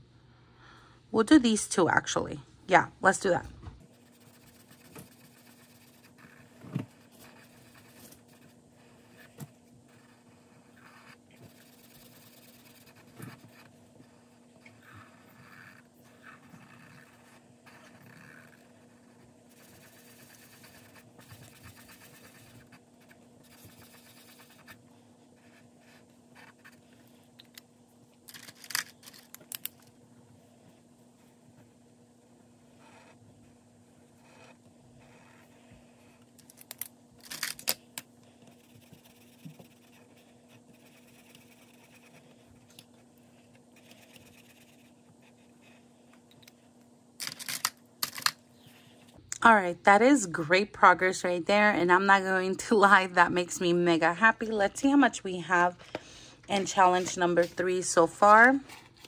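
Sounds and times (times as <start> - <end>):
faint steady low hum: 0.0 - 59.0
marker scratching on paper: 3.9 - 24.8, 25.4 - 27.3, 34.2 - 36.3, 38.4 - 45.9.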